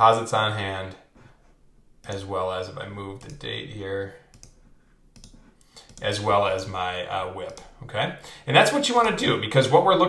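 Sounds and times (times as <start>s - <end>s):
computer keyboard and mouse clicks: 2.0s - 2.3s, 3.1s - 3.6s, 4.3s - 4.6s, 5.2s - 6.2s, 7.4s - 7.7s.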